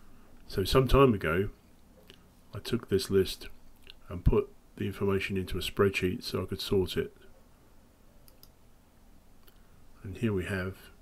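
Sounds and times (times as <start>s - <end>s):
faint computer mouse clicks: 8.2s - 8.6s.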